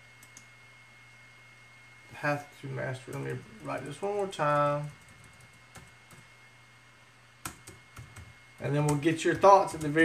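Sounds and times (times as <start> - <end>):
faint steady hum: 0.0 - 10.0
keyboard typing clicks: 0.2 - 0.5, 7.4 - 10.0.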